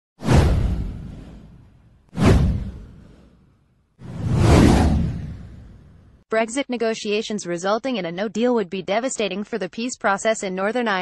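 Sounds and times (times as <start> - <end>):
whoosh with deep rumble: 0.2 - 6.2.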